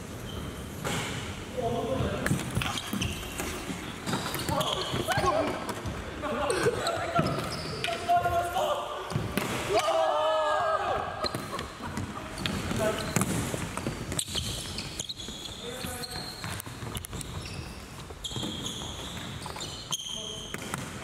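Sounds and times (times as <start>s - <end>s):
players' voices echoing: 1.2s - 14.2s, 15.5s - 16.7s.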